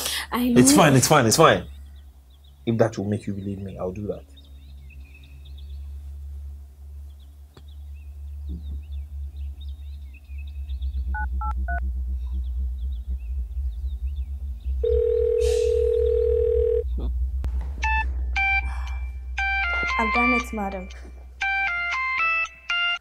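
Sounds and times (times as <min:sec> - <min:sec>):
phone ringback tone: 0:14.8 - 0:16.8
melodic phone ringtone: 0:14.9 - 0:16.8
background music: 0:17.8 - 0:23.0.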